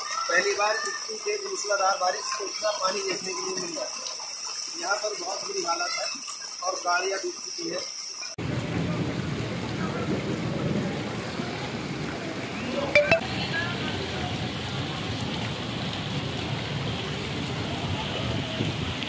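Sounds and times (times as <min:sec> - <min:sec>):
heavy rain on flooded street: 0:00.0 - 0:19.0.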